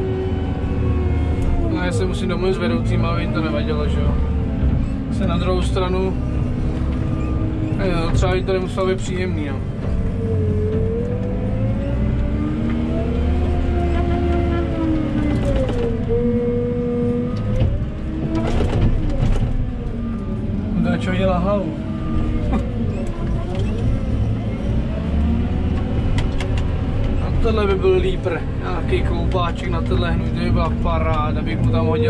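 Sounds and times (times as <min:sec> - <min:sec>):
diesel engine revving under load: 0:00.0 - 0:32.0.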